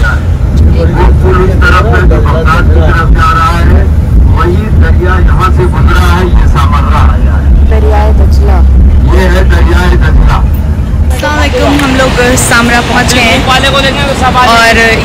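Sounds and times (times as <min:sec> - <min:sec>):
bus rumble from inside: 0:00.0 - 0:15.0
people talking: 0:00.0 - 0:15.0.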